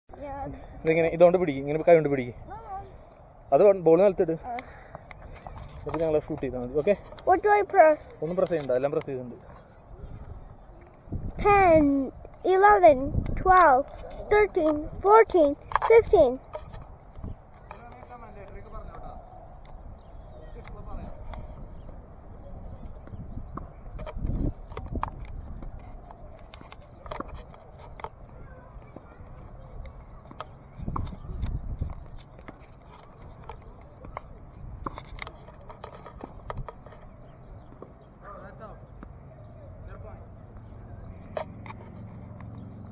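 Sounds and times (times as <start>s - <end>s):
distant voices talking: 0.1s - 42.9s
outdoor background noise: 0.1s - 42.9s.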